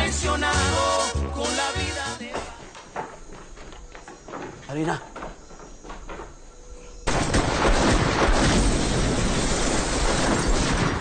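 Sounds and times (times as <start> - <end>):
rapid continuous gunfire: 7.1 - 11.0.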